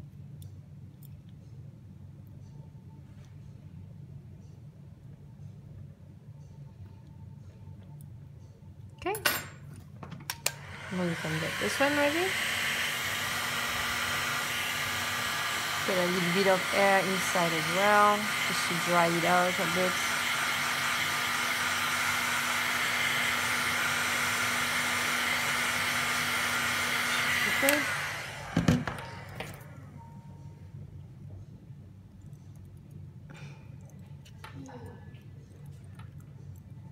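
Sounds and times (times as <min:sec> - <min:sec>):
low steady hum: 0:00.0 - 0:12.3, 0:28.3 - 0:36.9
heat gun fan winding down: 0:10.3 - 0:30.1
tools knocking on bench: 0:28.6 - 0:29.1.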